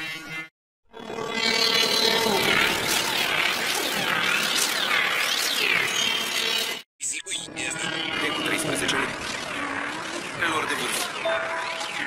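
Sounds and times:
distorted warbling pitch glides: 0:02.0 - 0:12.0.

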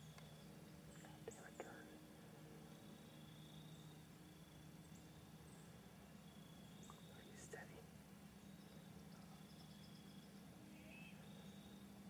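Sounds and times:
faint whispering: 0:01.0 - 0:02.0, 0:07.0 - 0:07.9.

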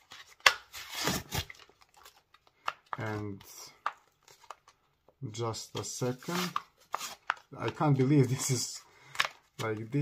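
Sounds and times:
packaging rustling and scraping: 0:00.0 - 0:04.8, 0:05.7 - 0:10.0
blister packaging snapping open: 0:00.1 - 0:03.0.

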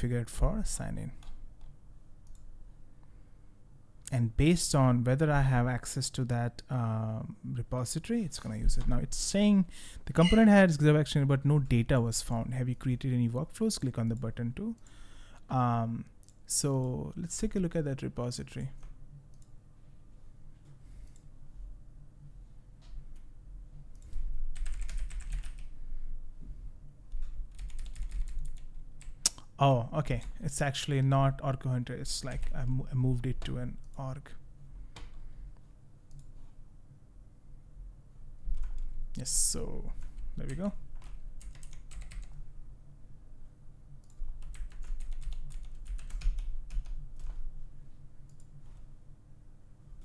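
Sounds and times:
computer keyboard typing: 0:24.0 - 0:25.7, 0:27.2 - 0:29.2, 0:32.3 - 0:32.8, 0:38.5 - 0:38.9, 0:40.0 - 0:42.4, 0:44.0 - 0:47.4.

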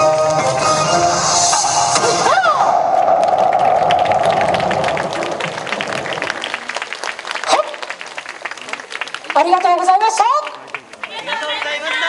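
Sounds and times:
dance music: 0:00.0 - 0:02.7
crowd shouting and cheering: 0:00.4 - 0:07.8
audience clapping: 0:02.9 - 0:12.0.

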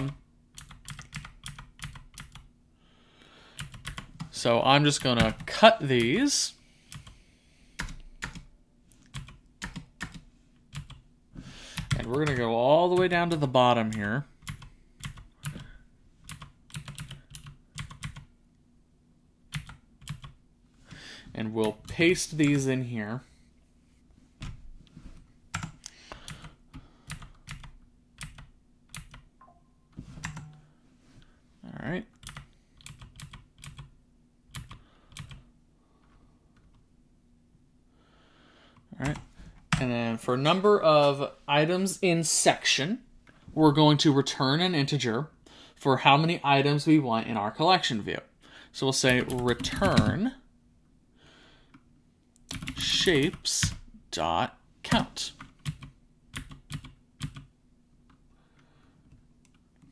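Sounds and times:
keyboard keys clicking: 0:00.0 - 0:02.4.

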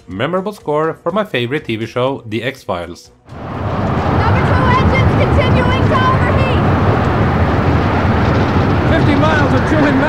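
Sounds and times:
rushing wind and aircraft roar: 0:03.3 - 0:10.0.

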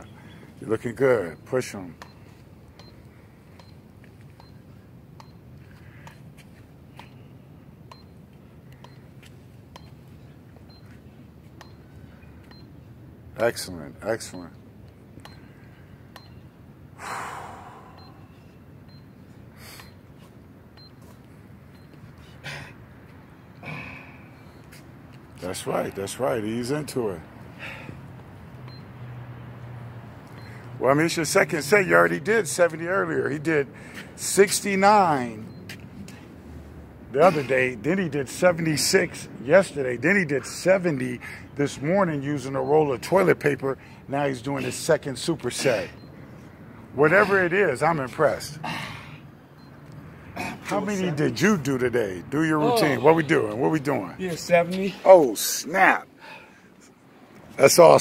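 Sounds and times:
faint outdoor background noise: 0:00.0 - 0:58.0.

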